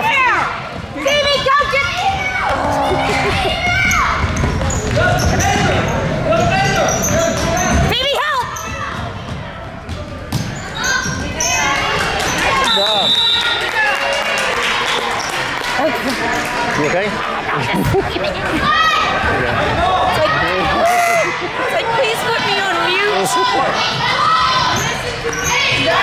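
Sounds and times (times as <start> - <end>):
people calling out in gym: 0.0 - 9.2, 17.4 - 26.0.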